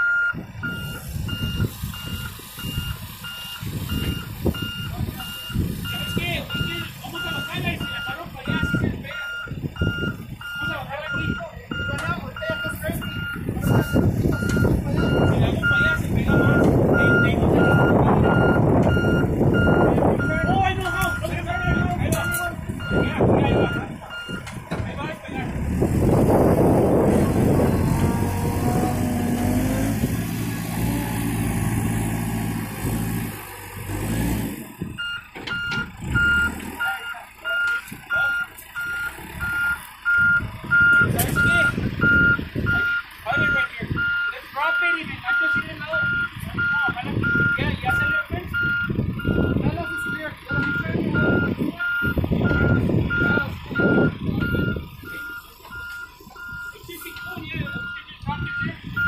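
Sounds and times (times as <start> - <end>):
reversing alarm beeps: 0.0 - 24.5, 35.0 - 59.0
diesel engine running: 0.0 - 59.0.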